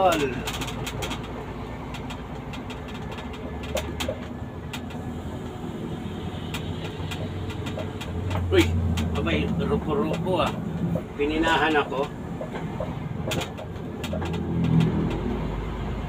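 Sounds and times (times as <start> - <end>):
vehicle engine and road drone: 0.0 - 16.0.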